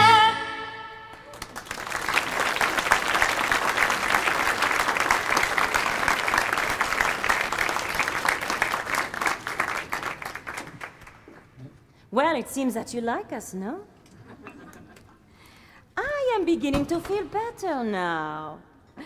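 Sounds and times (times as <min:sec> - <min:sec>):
audience applauding: 0:01.2 - 0:11.4.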